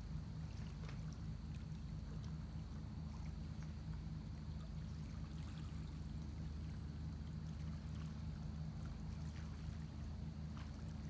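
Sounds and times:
steady low hum: 0.0s - 11.0s
water lapping at shore: 0.0s - 11.0s.

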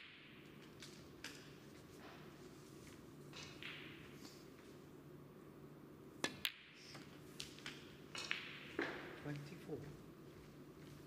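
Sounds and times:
snooker balls clicking: 0.0s - 2.3s, 2.9s - 4.7s, 6.2s - 9.5s
cue tip striking ball: 3.4s - 4.2s, 7.6s - 9.2s.

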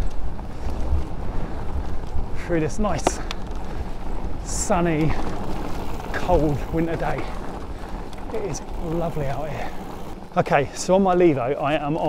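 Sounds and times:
wind noise on microphone: 0.0s - 10.3s
bike tyres rumbling on trail: 0.0s - 12.0s.

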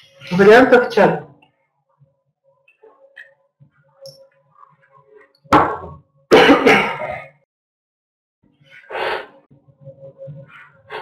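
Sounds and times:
person coughing: 6.3s - 7.4s.

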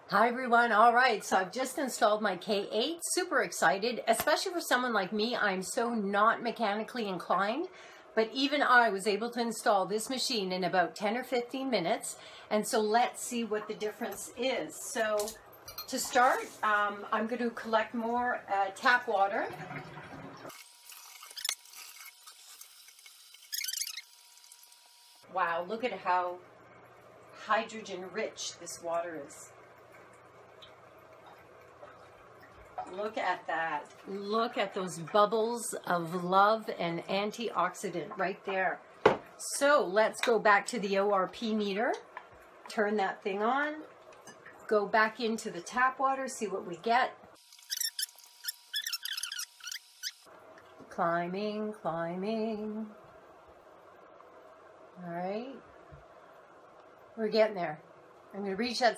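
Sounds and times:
sped-up squeaky voice chirps: 23.5s - 24.1s, 47.6s - 50.2s.

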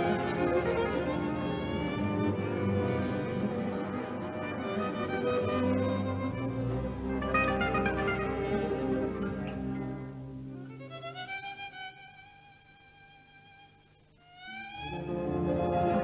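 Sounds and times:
violins playing melody: 0.0s - 16.0s.

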